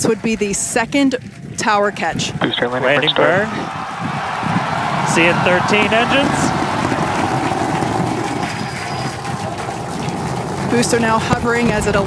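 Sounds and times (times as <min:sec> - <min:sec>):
rocket engines rushing roar: 0:00.0 - 0:12.0.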